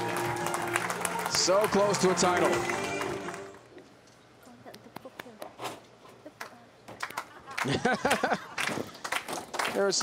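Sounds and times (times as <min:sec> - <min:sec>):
hand claps: 0:00.0 - 0:03.5, 0:06.4 - 0:10.0.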